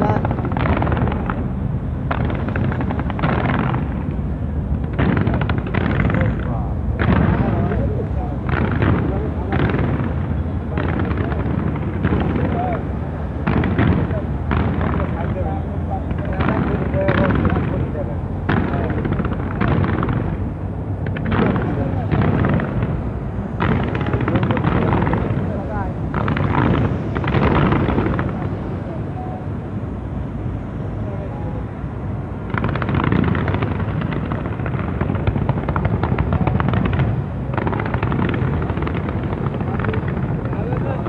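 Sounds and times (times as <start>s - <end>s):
fireworks crackling: 0.0s - 29.4s, 32.3s - 41.0s
fireworks bangs: 0.0s - 30.2s, 31.0s - 41.0s.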